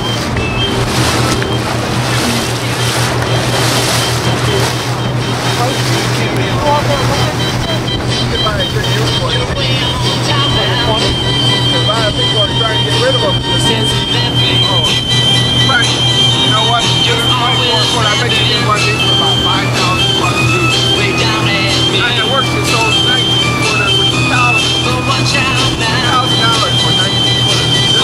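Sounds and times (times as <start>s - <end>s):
outboard motor humming: 0.0s - 28.0s
wind and water rushing: 0.0s - 28.0s
music with singing from radio: 6.1s - 28.0s.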